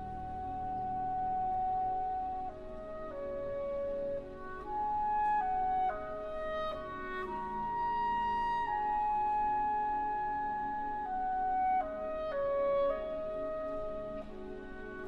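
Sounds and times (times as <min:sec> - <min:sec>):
clarinet solo: 0:00.0 - 0:15.0
soft orchestral accompaniment: 0:00.0 - 0:15.0.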